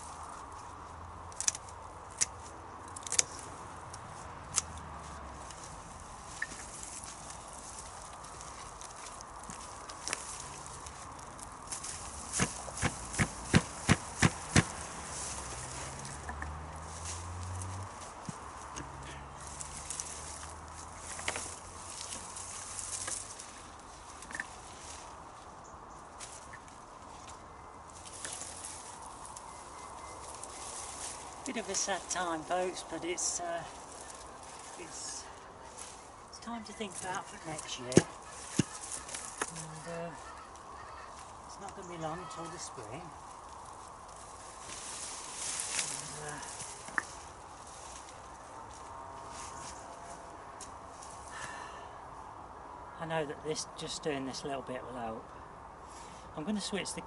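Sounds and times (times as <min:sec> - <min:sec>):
secateurs snipping plant stems: 0:01.2 - 0:05.6, 0:08.1 - 0:15.0.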